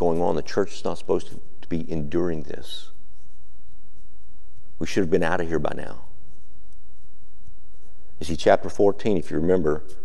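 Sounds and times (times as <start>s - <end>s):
faint room tone hiss: 0.0s - 10.0s.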